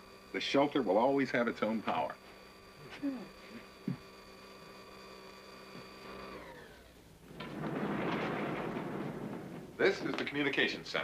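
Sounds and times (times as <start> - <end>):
elevator electric whine: 0.0 - 11.0
elevator doors sliding open: 7.3 - 11.0.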